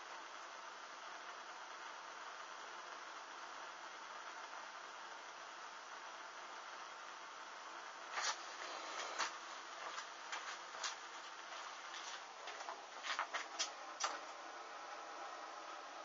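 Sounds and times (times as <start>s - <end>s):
faint steady hiss: 0.0s - 16.0s
burning fabric crackling: 7.4s - 14.2s.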